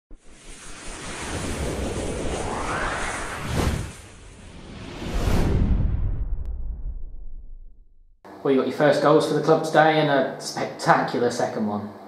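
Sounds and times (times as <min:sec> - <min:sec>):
whoosh rush of noise: 0:00.1 - 0:08.0
low rumble: 0:00.1 - 0:08.2.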